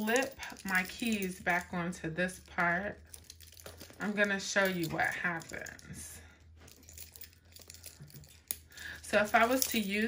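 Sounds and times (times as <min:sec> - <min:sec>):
keys clicking on key ring: 0:00.0 - 0:01.7, 0:02.5 - 0:05.9, 0:06.7 - 0:10.0.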